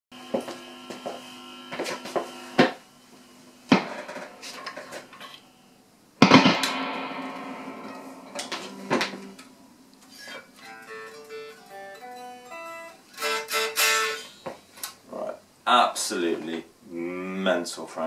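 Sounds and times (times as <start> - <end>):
guitar handling knocks: 6.2 - 9.6
amplifier burst from cable jack: 6.2 - 10.4
open guitar strings ringing: 6.2 - 14.3.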